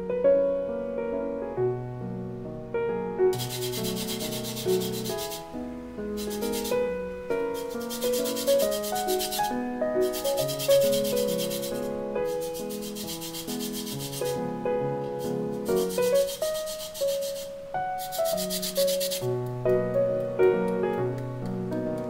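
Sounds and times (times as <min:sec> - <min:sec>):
zester grating lemon rind: 0:03.4 - 0:05.5, 0:06.2 - 0:14.4, 0:15.2 - 0:19.2.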